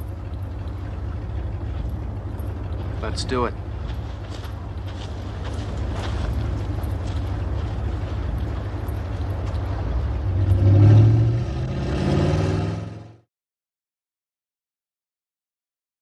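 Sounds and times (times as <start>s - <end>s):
car engine rumbling and revving: 0.0s - 13.3s.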